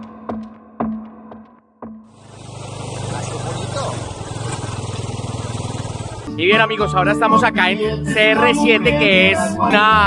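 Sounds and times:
motorcycle engine running: 2.1s - 6.3s.

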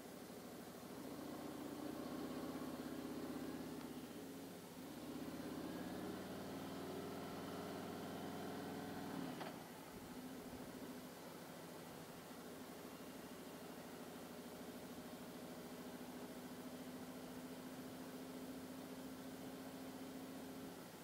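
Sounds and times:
motorcycle engine idling and pulling away: 0.5s - 21.0s.

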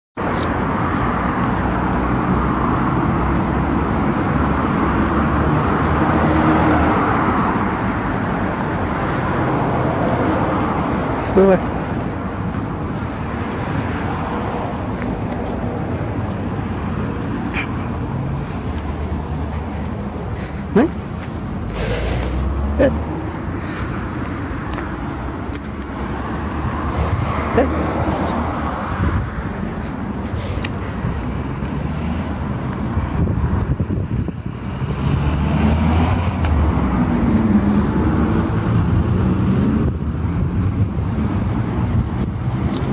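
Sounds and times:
deep rumble of passing vehicle: 0.2s - 42.9s
passing cars: 0.2s - 42.9s.

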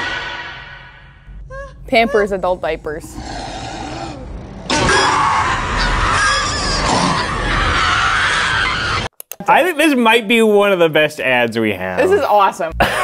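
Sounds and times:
harsh screeching roar: 0.0s - 1.2s, 3.0s - 9.1s
low rumble: 0.0s - 4.7s.

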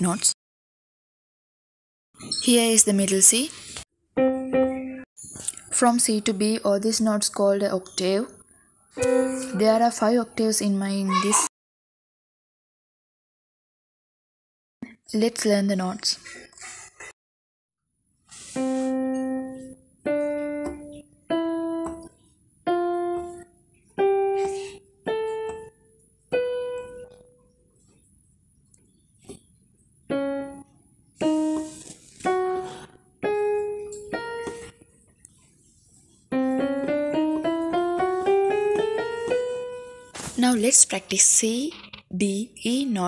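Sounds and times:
electronic keyboard piano notes: 4.1s - 5.1s, 8.9s - 10.5s, 18.6s - 27.6s, 30.1s - 34.8s, 36.3s - 40.2s.

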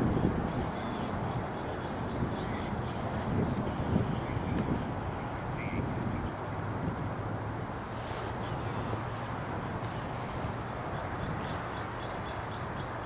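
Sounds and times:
diesel locomotive rumble: 0.0s - 11.9s.

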